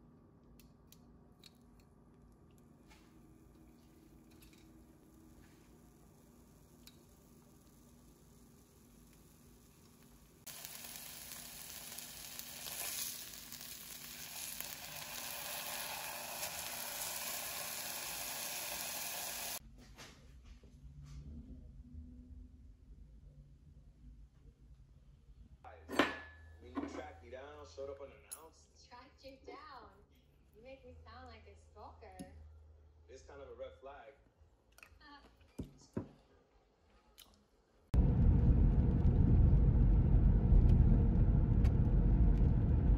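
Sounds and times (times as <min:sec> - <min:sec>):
steaks sizzling in a frying pan: 0:07.1 - 0:19.6.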